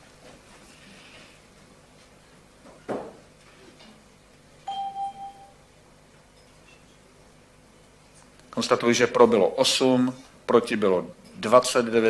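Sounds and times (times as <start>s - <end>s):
electronic chime tone: 4.7s - 5.6s.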